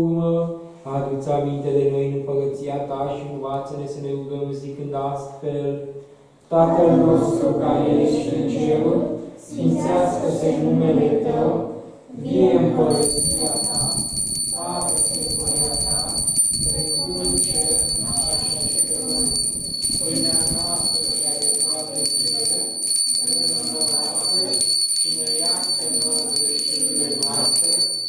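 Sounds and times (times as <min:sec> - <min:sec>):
voices reciting a prayer: 0:06.5 - 0:28.0.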